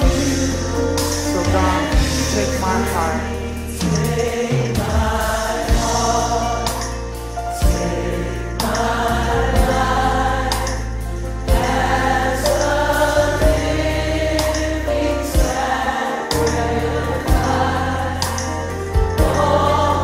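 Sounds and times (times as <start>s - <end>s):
strong bass line: 0.0s - 6.8s
band accompaniment: 0.0s - 20.0s
group of voices singing: 0.0s - 20.0s.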